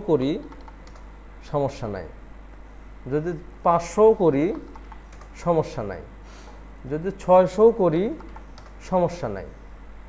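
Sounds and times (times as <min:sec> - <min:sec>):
person speaking: 0:00.0 - 0:00.8, 0:01.4 - 0:02.2, 0:03.0 - 0:06.2, 0:06.8 - 0:09.6
keyboard key clicks: 0:00.4 - 0:01.0, 0:04.5 - 0:05.4, 0:08.1 - 0:08.8.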